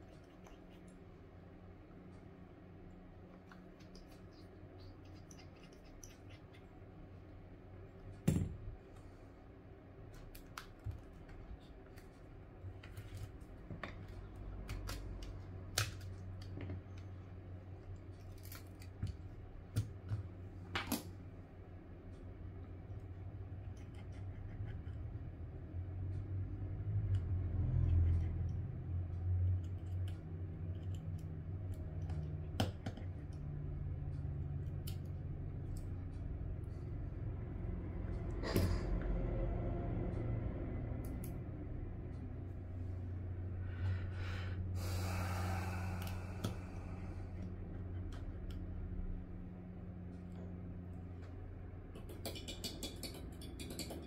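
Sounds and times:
steady low hum: 0.0 - 54.0
small clicks and taps: 51.2 - 54.0.

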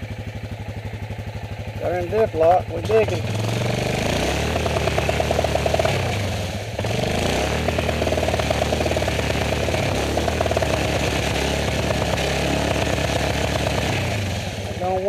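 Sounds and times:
atv engine pulling through mud: 0.0 - 15.0.

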